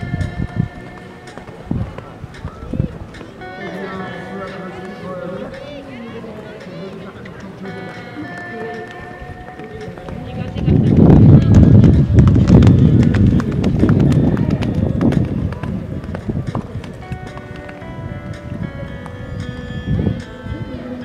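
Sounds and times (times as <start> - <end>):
hoofbeats on sand: 9.7 - 18.5.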